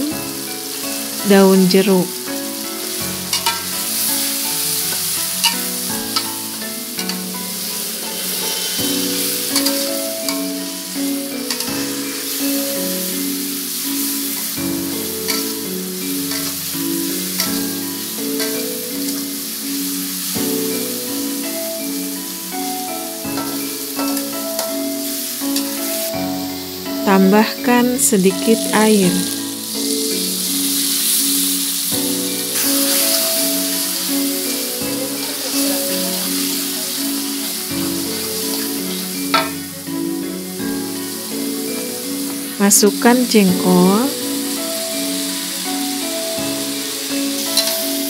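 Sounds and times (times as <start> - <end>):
food sizzling in hot oil: 0.0 - 48.0
simple background melody: 0.0 - 48.0
spatula scraping wok: 2.2 - 40.4, 44.1 - 48.0
spatula clicking on wok: 3.3 - 3.7, 15.3 - 15.6, 16.3 - 16.6.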